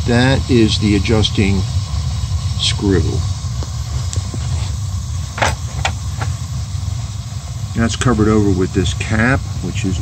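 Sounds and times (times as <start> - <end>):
gas burner rumbling: 0.0 - 10.0.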